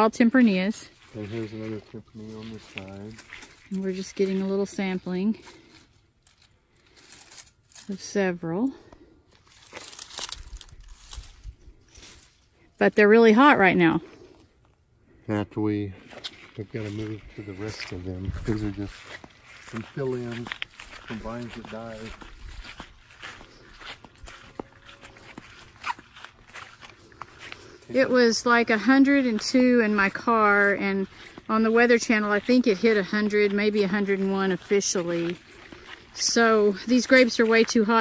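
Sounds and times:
footsteps on dry grass: 0:00.0 - 0:12.7, 0:15.9 - 0:38.0
leaves and netting rustling: 0:00.0 - 0:13.4, 0:16.0 - 0:38.0.

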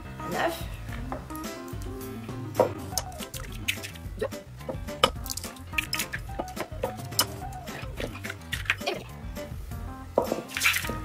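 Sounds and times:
background music: 0:00.0 - 0:11.0
eggs cracking on bowl rim: 0:02.8 - 0:04.1, 0:04.7 - 0:09.0.

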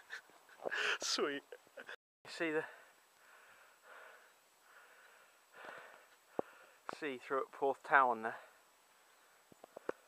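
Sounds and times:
faint breathing: 0:00.6 - 0:01.1, 0:02.6 - 0:06.9, 0:08.3 - 0:10.0.

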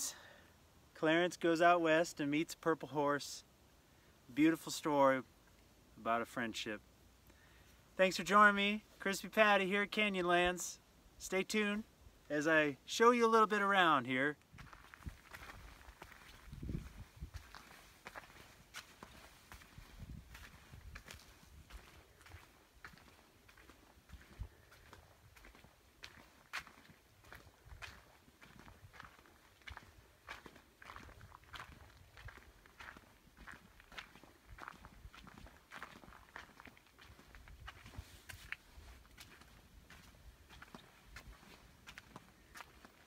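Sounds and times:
footsteps on dirt trail: 0:12.4 - 0:43.0.

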